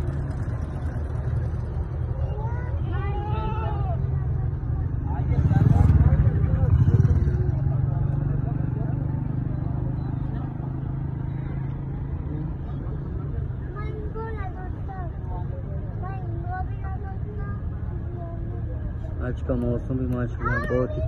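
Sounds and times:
people's voices and calls: 0.0s - 21.0s
vehicle engine and road rumble: 0.0s - 21.0s.

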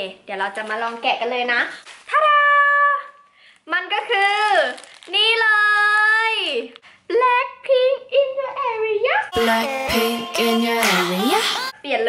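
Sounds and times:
woman's sing-song voice: 9.4s - 11.8s.

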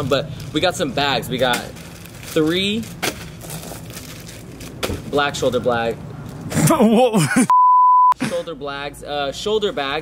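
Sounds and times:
plastic packaging crinkling: 1.4s - 4.8s.

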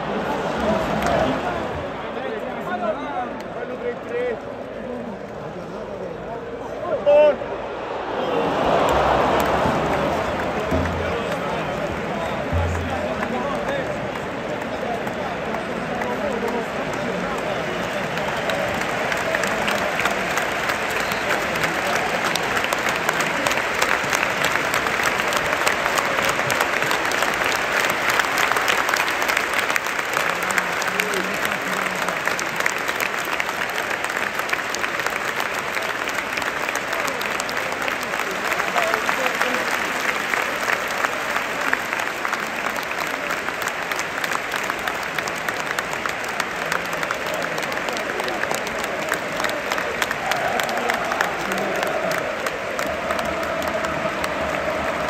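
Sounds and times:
crowd clapping: 0.0s - 55.0s
crowd voices: 0.0s - 55.0s.

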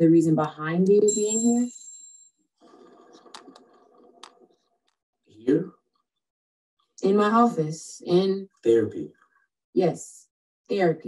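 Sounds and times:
thin high ringing tone: 1.0s - 2.4s.

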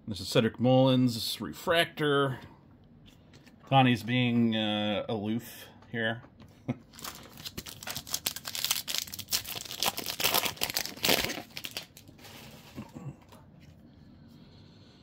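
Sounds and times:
faint handling of cards: 2.4s - 4.4s, 5.6s - 14.4s
foil wrapper tearing and crinkling: 6.9s - 12.3s.

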